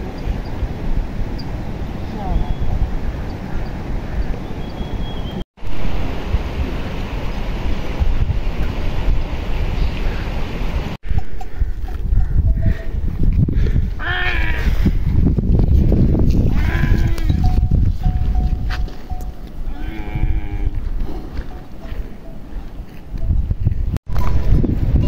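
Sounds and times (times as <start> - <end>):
wind rumbling on microphone: 0.0 - 25.0
livestock bleating: 16.5 - 17.4, 19.7 - 20.8.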